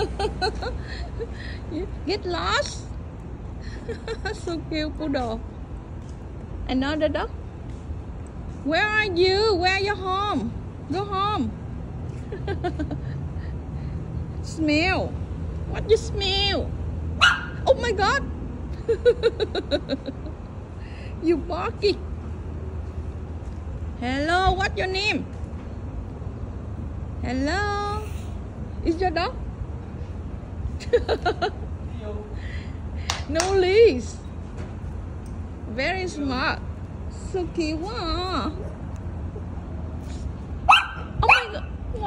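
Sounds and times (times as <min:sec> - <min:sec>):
low urban background rumble: 0:00.0 - 0:42.0
small dog yapping: 0:17.2 - 0:17.6, 0:40.7 - 0:41.7.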